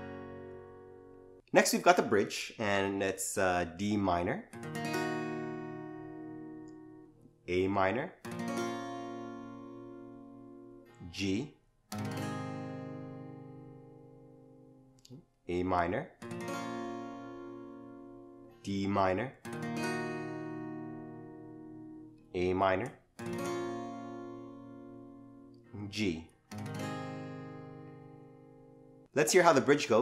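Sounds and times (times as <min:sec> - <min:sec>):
acoustic guitar strum: 0:00.0 - 0:01.4, 0:04.6 - 0:07.4, 0:08.2 - 0:11.1, 0:11.9 - 0:14.8, 0:16.2 - 0:18.7, 0:19.4 - 0:22.3, 0:23.2 - 0:29.9.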